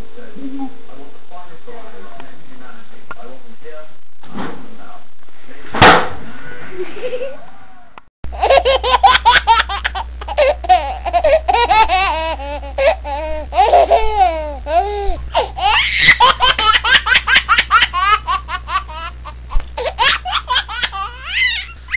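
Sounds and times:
high-pitched hearty laughter: 8.3 - 21.9.

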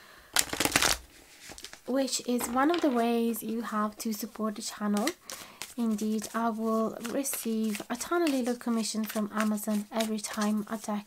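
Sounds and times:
cards riffle-shuffled: 0.4 - 1.8, 4.9 - 11.0.

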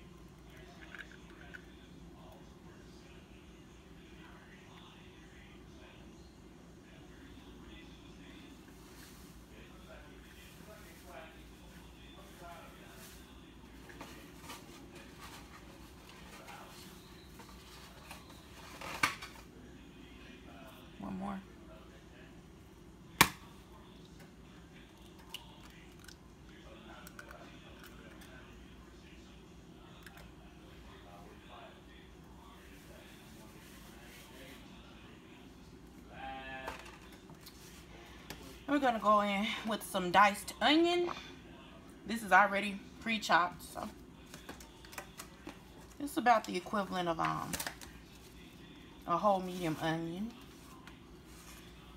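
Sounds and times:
low steady background noise: 0.0 - 51.9.

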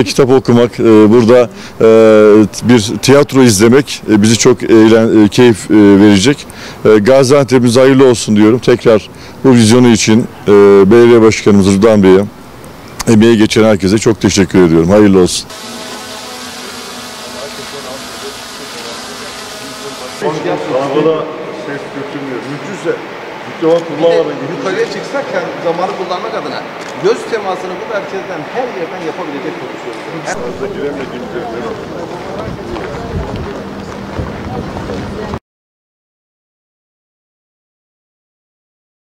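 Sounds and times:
men talking in echoing hall: 0.0 - 12.3, 13.1 - 33.1
outdoor background noise: 0.0 - 35.4
steady low hum: 14.7 - 34.6
people murmuring: 15.6 - 35.4
wind buffeting microphone: 32.3 - 35.4.

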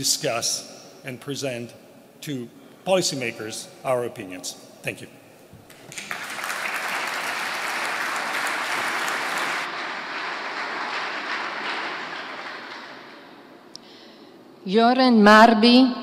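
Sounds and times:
audience applauding: 5.7 - 13.5.

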